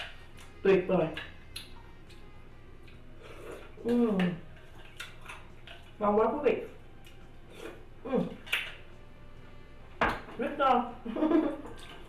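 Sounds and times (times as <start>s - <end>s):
woman humming appreciatively: 3.8s - 4.5s, 8.0s - 8.4s.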